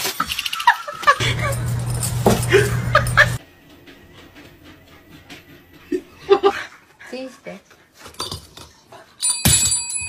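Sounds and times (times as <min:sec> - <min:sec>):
low steady hum: 0:01.2 - 0:03.4.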